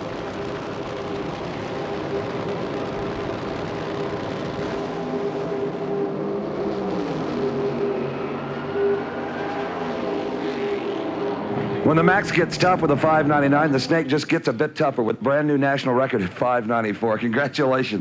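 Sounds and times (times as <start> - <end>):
drag racing engines roaring: 0.0 - 15.2.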